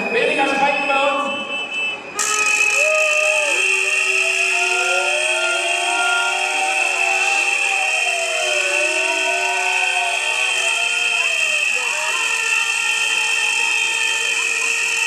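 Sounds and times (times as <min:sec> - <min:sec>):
shrill whistling: 0:00.0 - 0:13.2
sliding horn tones: 0:01.4 - 0:15.0.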